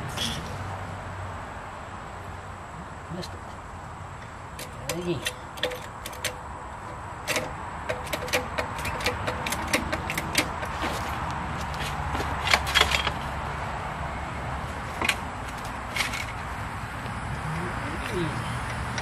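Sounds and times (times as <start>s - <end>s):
metal clicks of jack: 4.6s - 10.7s.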